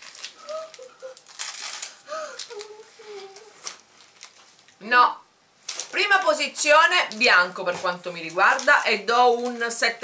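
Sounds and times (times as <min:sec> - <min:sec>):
plastic wrapper crinkling: 0:00.0 - 0:04.8, 0:05.6 - 0:10.0
person humming mm: 0:00.4 - 0:01.3, 0:02.0 - 0:03.7.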